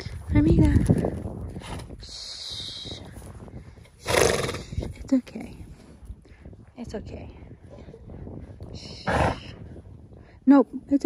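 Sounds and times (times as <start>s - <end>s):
horse vocalizing: 4.0s - 4.9s, 8.9s - 9.7s.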